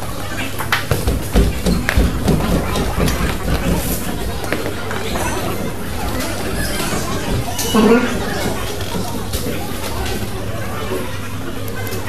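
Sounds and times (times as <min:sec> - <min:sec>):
chatter of people: 0:00.0 - 0:12.0.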